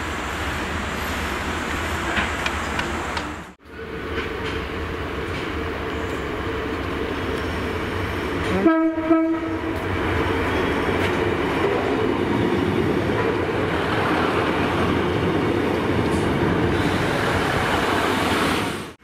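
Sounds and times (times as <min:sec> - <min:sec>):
diesel train engine and wheels: 0:00.0 - 0:19.0
train horn blast: 0:08.4 - 0:09.8.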